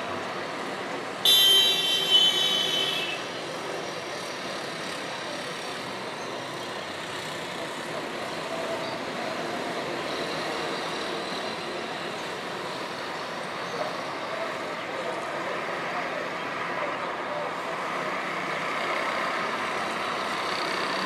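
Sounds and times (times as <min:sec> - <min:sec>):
distant road traffic hum: 0:00.0 - 0:21.0.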